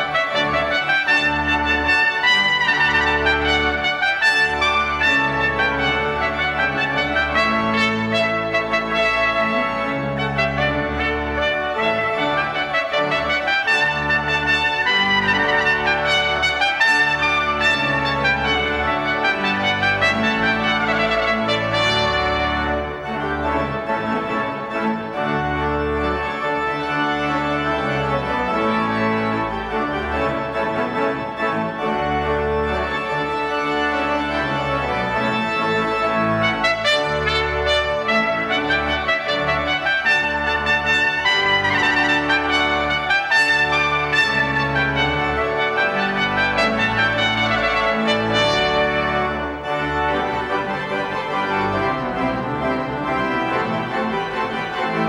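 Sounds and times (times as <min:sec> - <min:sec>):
piccolo trumpet melody: 0:00.0 - 0:25.1, 0:32.8 - 0:55.0
pipe organ chords: 0:00.0 - 0:55.0.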